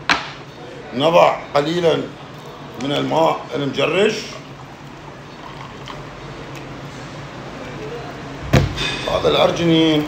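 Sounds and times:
loud sharp thump: 8.5 - 9.0.

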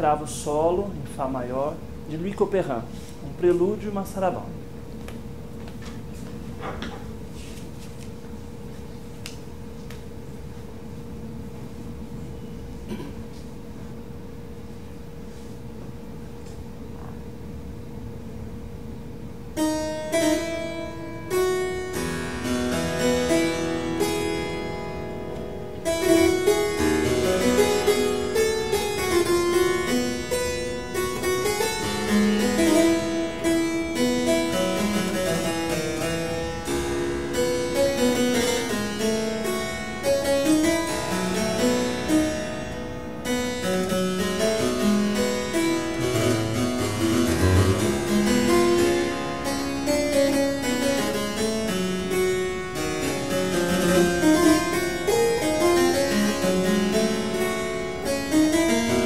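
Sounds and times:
solo harpsichord piece: 19.4 - 59.0.

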